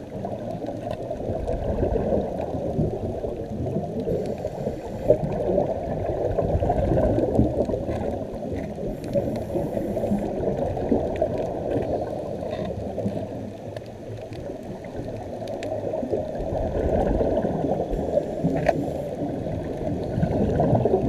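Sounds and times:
muffled underwater bubbling: 0.0s - 21.0s.

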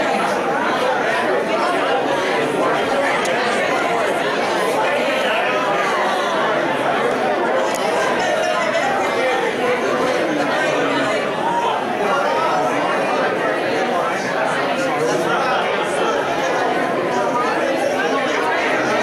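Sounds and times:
chatter of many people: 0.0s - 19.0s.

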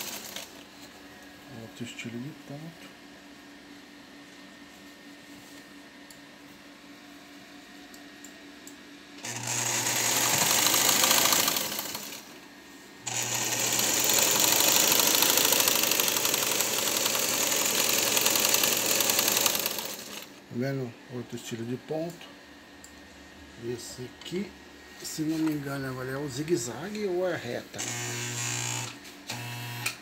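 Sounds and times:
electric sewing machine stitching: 0.0s - 0.6s, 9.2s - 12.4s, 13.0s - 20.4s, 27.8s - 30.0s.

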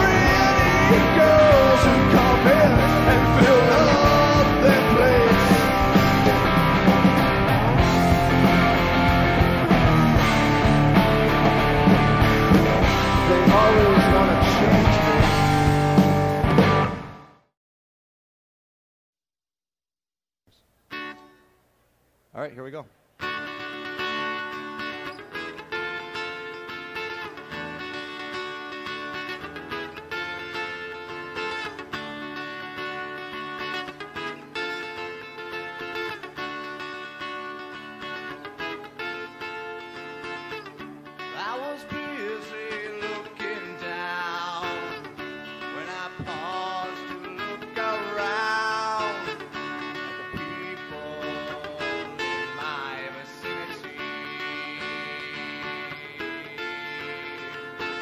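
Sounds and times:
lead guitar with bent notes: 0.0s - 17.4s, 23.2s - 58.0s
electric guitar chords: 0.0s - 17.5s, 23.2s - 58.0s.

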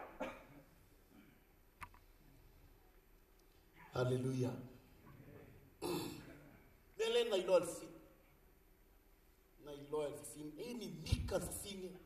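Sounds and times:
man clearing throat into microphone: 0.0s - 1.4s, 5.8s - 6.4s.

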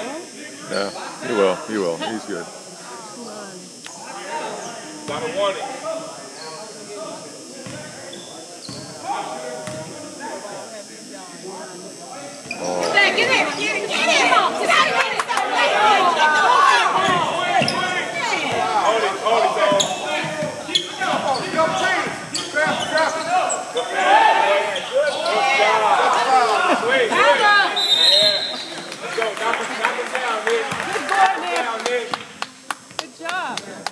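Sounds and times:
indistinct voices echoing: 11.9s - 29.8s.

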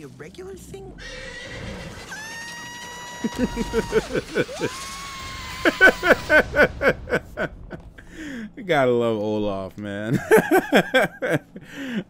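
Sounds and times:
high-pitched animated character scream: 2.1s - 6.0s.

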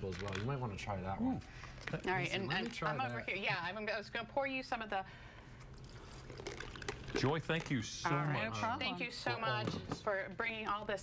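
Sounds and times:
liquid trickling into a glass: 5.8s - 7.6s.

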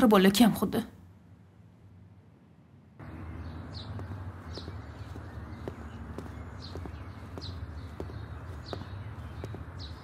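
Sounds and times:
bird chirping: 3.0s - 10.0s
footsteps on pavement: 3.0s - 10.0s.

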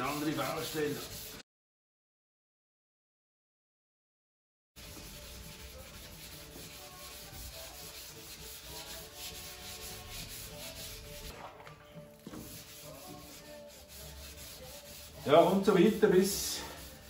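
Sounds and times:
sandpaper rubbing on metal: 0.0s - 1.4s, 4.8s - 11.3s, 12.3s - 17.0s.

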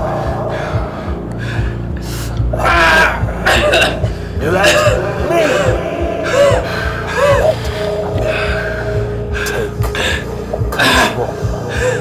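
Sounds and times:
low droning film score: 0.0s - 12.0s
man gasping and groaning: 0.0s - 12.0s.

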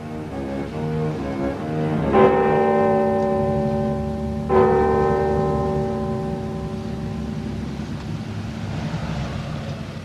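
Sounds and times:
large bell tolling: 2.0s - 10.0s.

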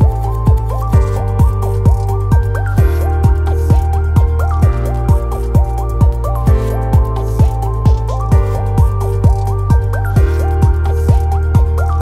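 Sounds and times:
kick drum beat: 0.0s - 11.8s.

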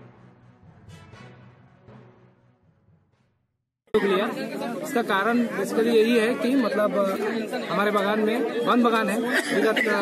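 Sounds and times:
crowd chatter: 3.9s - 10.0s.

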